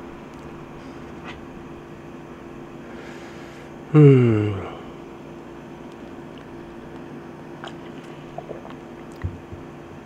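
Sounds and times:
air conditioner hiss and hum: 0:00.0 - 0:10.0.

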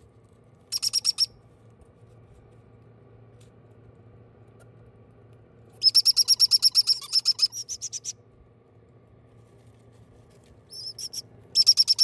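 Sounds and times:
parrot chick chirping: 0:00.7 - 0:01.3, 0:05.8 - 0:08.1, 0:10.7 - 0:12.0.

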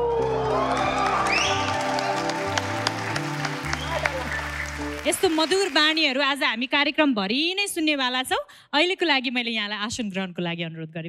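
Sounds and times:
audience clapping: 0:00.0 - 0:06.4.

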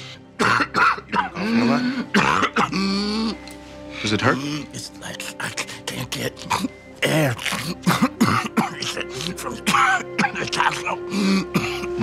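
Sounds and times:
man clearing his throat: 0:00.4 - 0:03.0, 0:07.6 - 0:10.6, 0:11.4 - 0:12.0.

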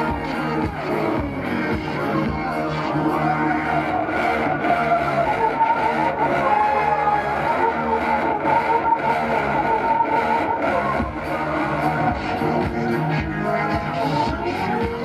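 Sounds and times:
loud electronic music: 0:00.0 - 0:15.0.

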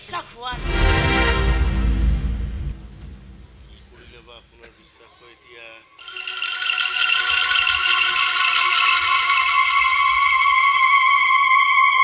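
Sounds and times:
rattling shimmer: 0:06.0 - 0:11.0
sustained high synth tones: 0:06.0 - 0:12.0.

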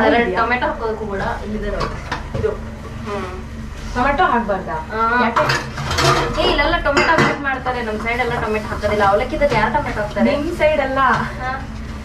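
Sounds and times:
woman talking: 0:00.0 - 0:05.6, 0:06.3 - 0:11.7.

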